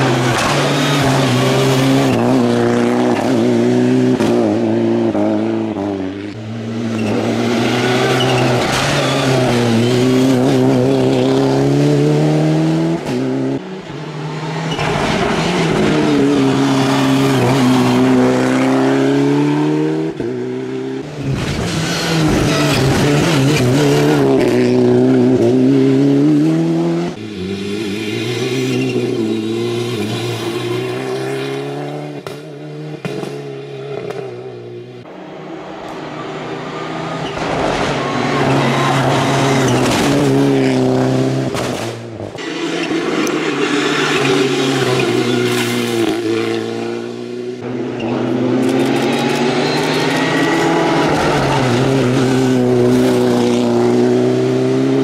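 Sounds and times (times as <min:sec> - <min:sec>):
rally car engine revving: 0:00.0 - 0:55.0.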